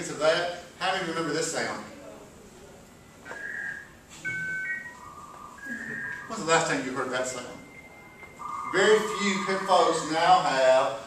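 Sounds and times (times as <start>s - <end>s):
dial-up modem tones: 2.9s - 10.2s.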